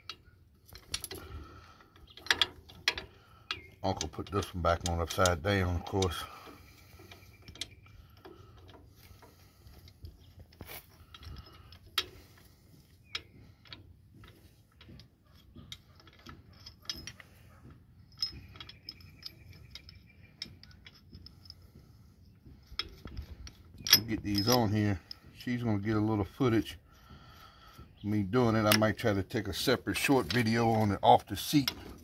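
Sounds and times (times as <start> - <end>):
wrench clicking on bolt: 2.0 - 7.8.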